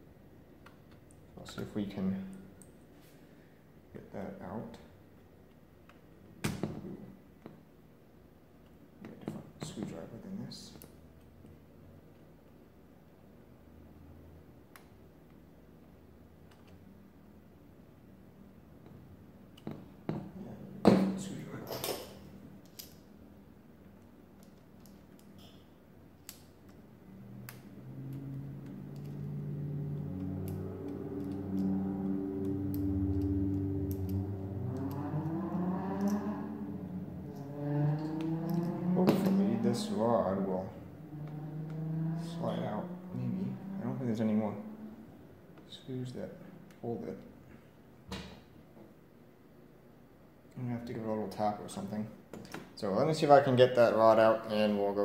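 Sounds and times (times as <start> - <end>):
low humming with shifting pitch: 26.3 - 46.8.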